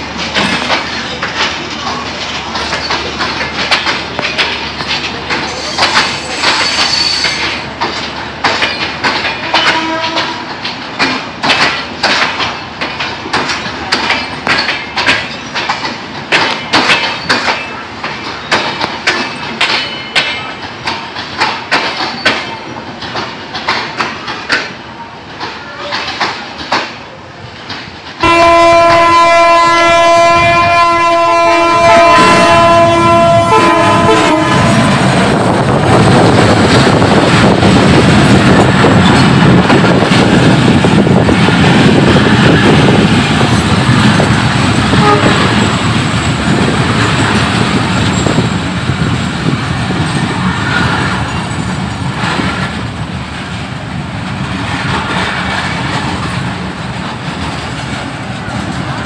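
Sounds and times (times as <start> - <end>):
wheels clattering over rails: 0.0 - 28.2, 32.0 - 59.0
train rumbling past: 0.0 - 59.0
train horn blast: 9.4 - 10.5, 28.2 - 35.0, 44.9 - 45.6.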